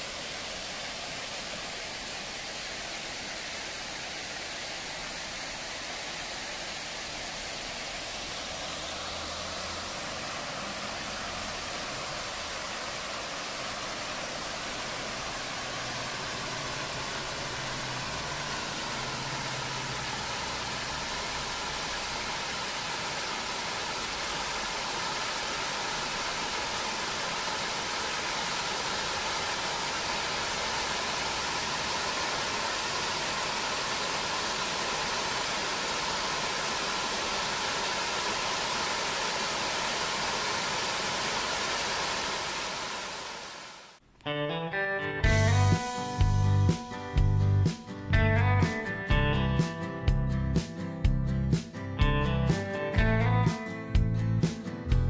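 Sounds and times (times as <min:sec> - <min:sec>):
waterfall splashing into pond: 0:00.0 - 0:44.0.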